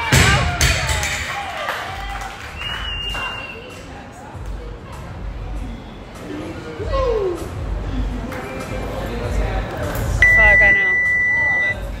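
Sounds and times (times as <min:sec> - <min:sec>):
long high timer beep: 0:10.2 - 0:11.8.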